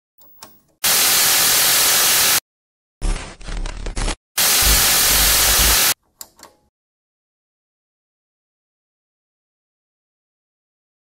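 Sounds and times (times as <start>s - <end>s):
choppy glitch burst: 4.4s - 6.0s
tv static hiss: 4.4s - 6.0s.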